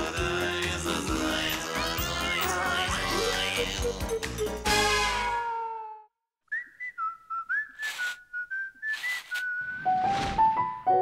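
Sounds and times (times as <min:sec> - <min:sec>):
whistled tune: 0:06.5 - 0:10.4.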